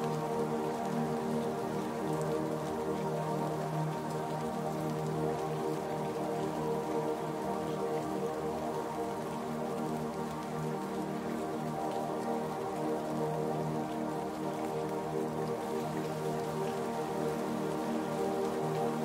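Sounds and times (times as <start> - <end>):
falling rain: 0.0 - 19.0
slow meditation music: 0.0 - 19.0.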